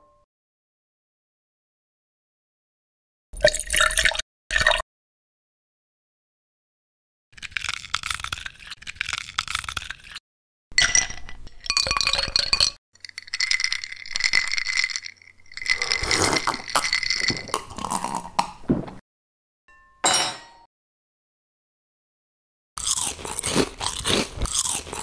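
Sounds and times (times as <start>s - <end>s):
ice cubes clinking in glass: 10.8s - 18.4s.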